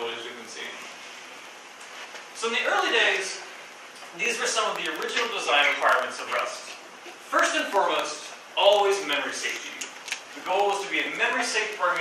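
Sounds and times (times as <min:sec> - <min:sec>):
man lecturing: 0:00.0 - 0:00.9, 0:02.4 - 0:03.5, 0:04.1 - 0:12.0.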